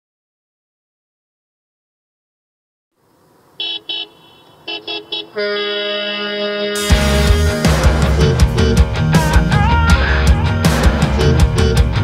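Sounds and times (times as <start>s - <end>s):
faint traffic noise: 3.0s - 6.8s
car horn honks: 3.5s - 7.6s.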